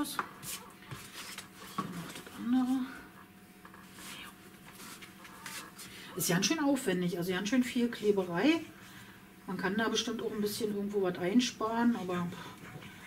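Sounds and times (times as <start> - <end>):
paper rustling: 0.5 - 2.6, 3.8 - 5.9.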